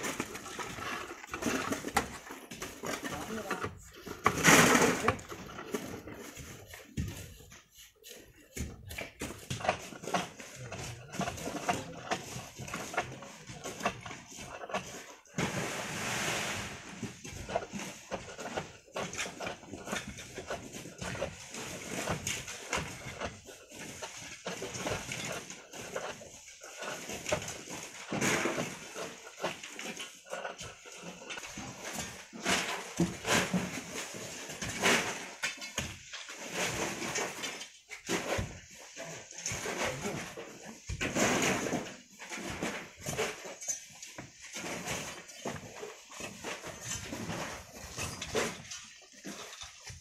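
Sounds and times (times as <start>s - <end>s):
poles scraping sand: 0.0s - 50.0s
sand and grit falling: 15.4s - 17.2s.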